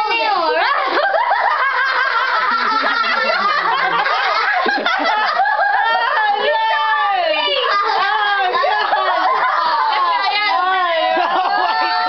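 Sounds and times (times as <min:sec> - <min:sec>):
children laughing: 0:00.1 - 0:12.0.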